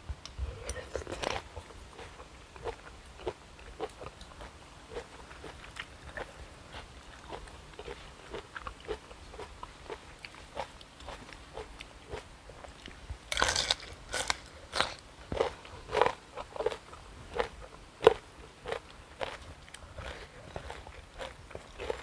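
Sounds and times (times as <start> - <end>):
soft chewing: 0.1 - 22.0
crisp bite into vegetable: 13.3 - 16.8
sharp crunches: 13.3 - 16.8.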